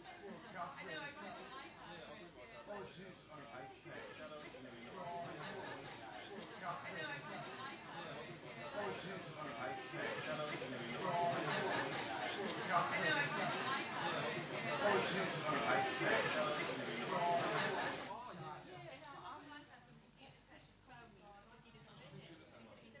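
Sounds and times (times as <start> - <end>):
people chatting indistinctly: 0.0 - 23.0
people talking at once: 0.0 - 23.0.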